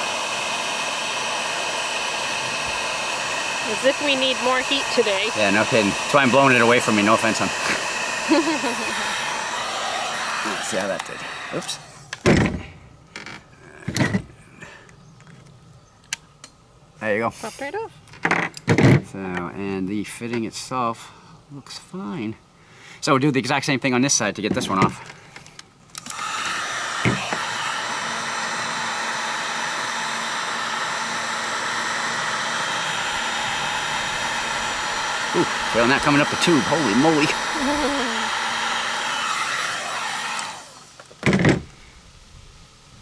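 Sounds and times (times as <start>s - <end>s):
heat gun blowing: 0.0s - 13.3s, 25.9s - 42.0s
creaky handling noise: 13.1s - 14.3s.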